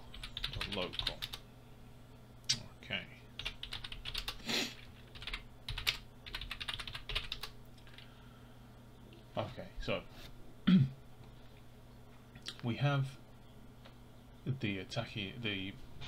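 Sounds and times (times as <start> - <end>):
computer keyboard typing: 0.1 - 1.4, 3.4 - 8.0.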